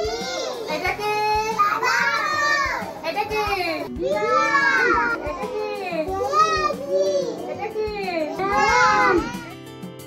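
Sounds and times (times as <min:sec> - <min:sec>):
young children chanting: 0:01.7 - 0:03.0, 0:03.9 - 0:09.5.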